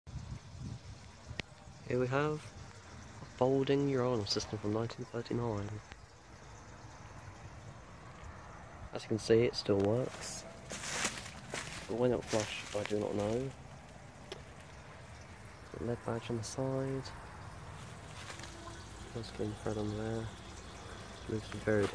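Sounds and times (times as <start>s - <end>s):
low uneven rumble: 0.4s - 21.9s
water trickling into cistern: 10.8s - 21.9s
man's voice: 11.8s - 13.6s, 21.3s - 21.9s.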